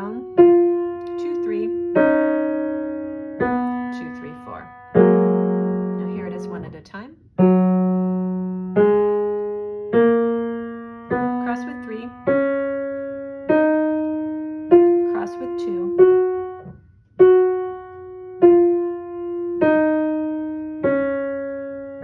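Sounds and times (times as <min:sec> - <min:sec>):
piano playing ascending scale: 0:00.0 - 0:06.8, 0:07.4 - 0:22.0.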